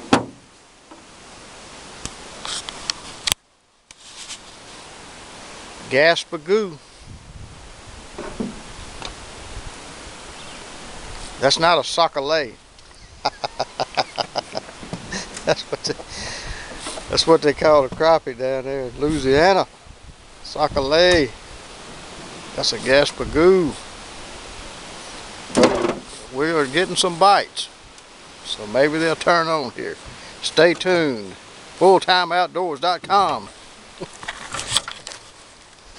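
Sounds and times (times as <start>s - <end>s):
outdoor background hiss: 0.0s - 35.9s.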